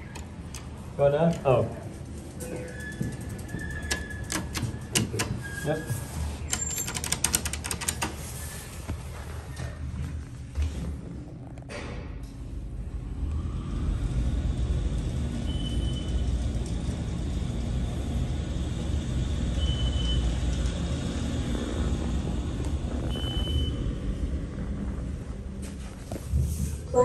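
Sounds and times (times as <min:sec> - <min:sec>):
elevator rumble and hiss: 0:12.4 - 0:27.0.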